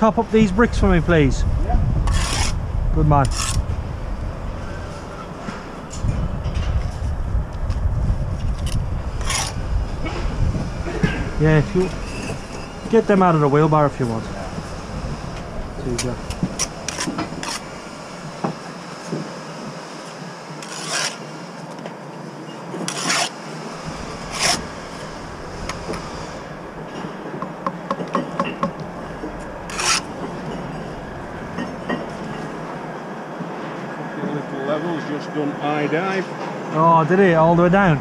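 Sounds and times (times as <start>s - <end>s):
trowel scraping mortar: 2.0s - 2.6s, 3.2s - 3.6s, 8.6s - 9.6s, 16.0s - 17.8s, 20.6s - 21.2s, 22.8s - 27.0s, 29.4s - 30.5s.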